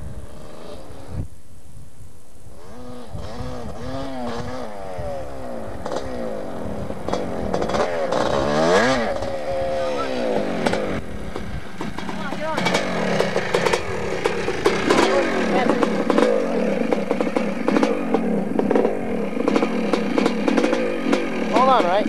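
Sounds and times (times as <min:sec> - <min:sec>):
dirt bike engine revving: 0:00.0 - 0:01.2, 0:02.5 - 0:22.0.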